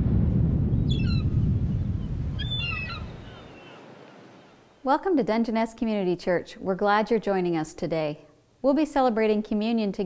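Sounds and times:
low rumbling wash: 0.0s - 4.8s
bird calling: 0.9s - 1.4s, 2.0s - 4.6s.

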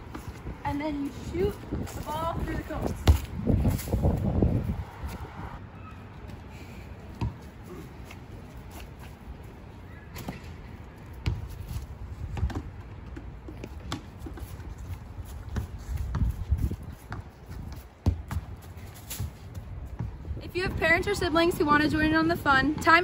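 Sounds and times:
soccer ball kicked: 1.9s - 4.4s, 7.1s - 7.5s, 11.2s - 11.6s, 15.5s - 20.8s
balls handled and thrown: 7.1s - 20.8s.

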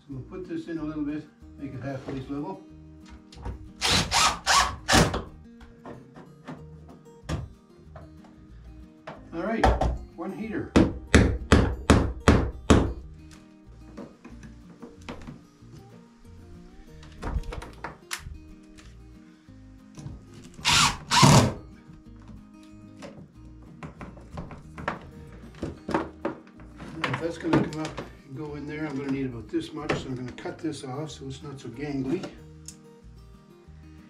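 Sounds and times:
quiet background music: 0.0s - 34.0s
cordless drill bursts: 3.8s - 5.1s, 20.6s - 21.6s.

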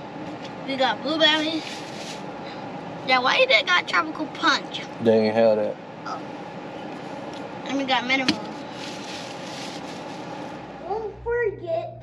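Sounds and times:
boy's voice: 0.6s - 1.8s, 3.1s - 5.0s, 7.7s - 8.5s, 10.8s - 12.0s.

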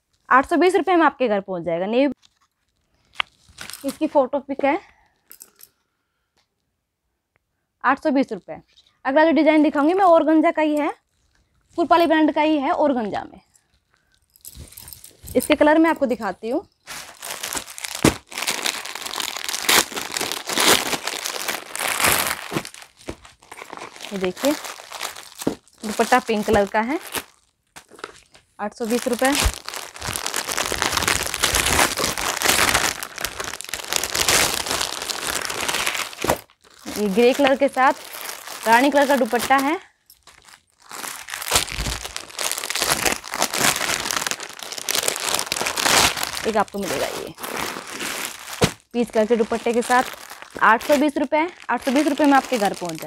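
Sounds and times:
plastic packaging crinkling: 2.1s - 4.1s, 13.9s - 53.0s.

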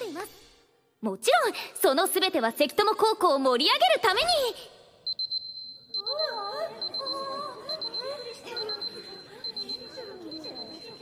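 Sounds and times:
electronic alarm beeping: 4.9s - 11.0s
voices talking: 5.8s - 11.0s.

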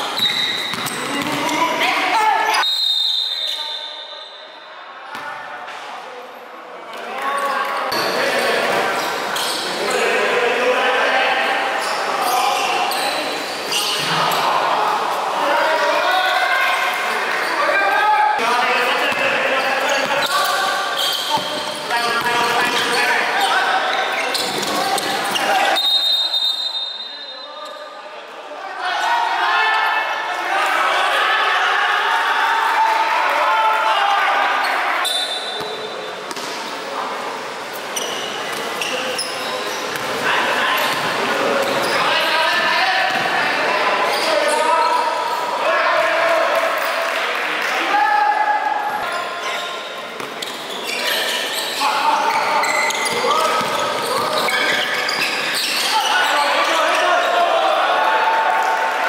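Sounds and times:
players calling out: 38.0s - 59.0s.

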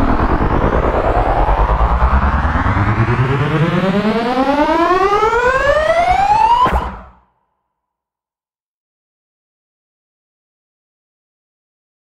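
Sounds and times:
low rumble: 0.0s - 7.2s
synthesized riser tone: 0.0s - 7.2s.

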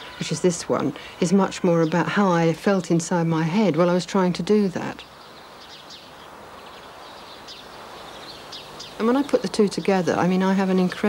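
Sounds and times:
steady low hiss: 0.0s - 11.0s.

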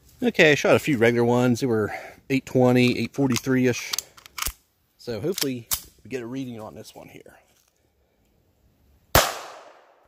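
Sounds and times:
pistol shot with echo: 9.1s - 10.0s.

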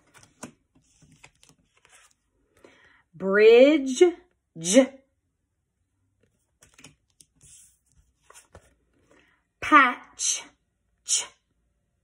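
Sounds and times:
paper flashcards rustling: 0.0s - 2.7s, 6.2s - 9.3s.

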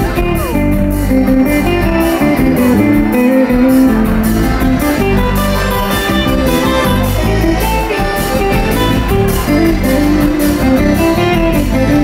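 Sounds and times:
bass: 0.0s - 12.0s
electric guitar lines: 0.0s - 12.0s
steady drum beat: 0.0s - 12.0s.

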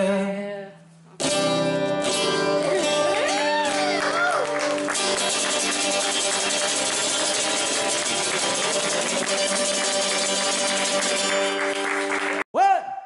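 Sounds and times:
acoustic guitar strumming: 1.1s - 12.4s.

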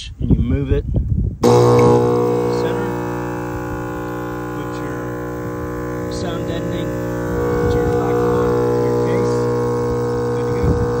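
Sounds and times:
air pump humming: 1.4s - 11.0s.

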